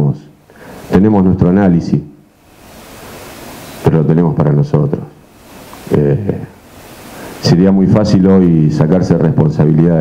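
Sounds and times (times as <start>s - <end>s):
microphone hiss: 0.0s - 10.0s
person speaking: 3.8s - 9.8s.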